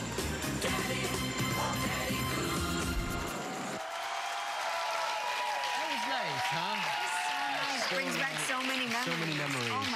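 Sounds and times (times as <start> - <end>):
background music: 0.0 - 3.8
studio audience applause: 3.3 - 9.9.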